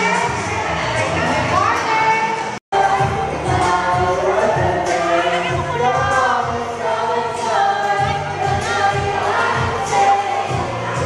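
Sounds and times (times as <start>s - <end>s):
amplified backing music: 0.0s - 11.0s
voices singing through microphones: 0.0s - 11.0s.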